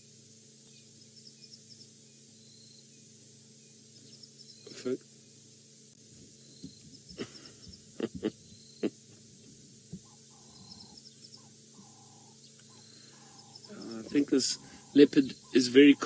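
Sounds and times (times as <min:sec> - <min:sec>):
small birds chirping: 0:00.0 - 0:16.0
bird hooting: 0:06.4 - 0:16.0.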